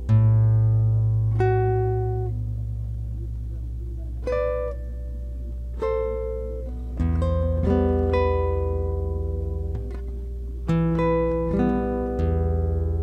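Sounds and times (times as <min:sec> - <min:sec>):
classical guitar played slowly: 0:00.0 - 0:13.0.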